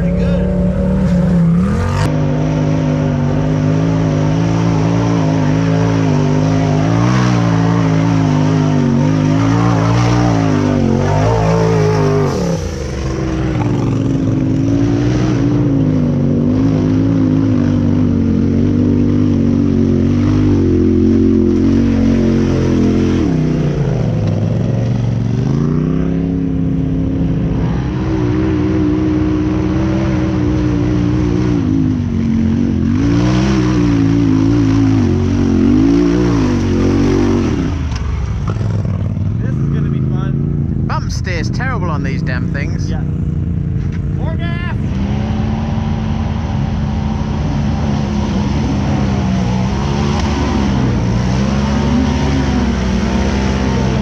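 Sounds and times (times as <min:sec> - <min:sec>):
engine revving: 0:00.0 - 0:54.0.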